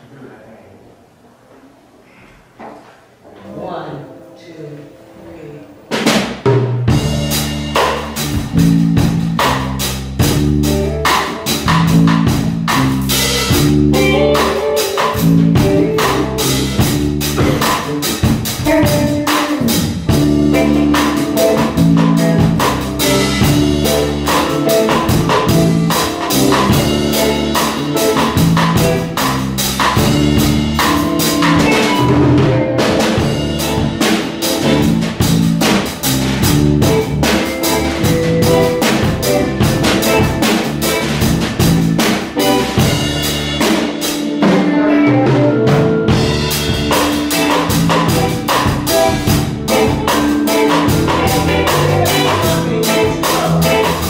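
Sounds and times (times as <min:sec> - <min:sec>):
guitar playing: 0:03.4 - 0:54.0
drum kit: 0:05.7 - 0:54.0.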